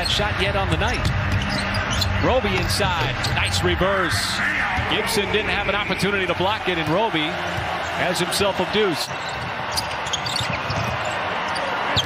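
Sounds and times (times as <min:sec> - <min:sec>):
arena crowd noise: 0:00.0 - 0:12.0
sneaker squeak: 0:00.9 - 0:02.2, 0:09.1 - 0:12.0.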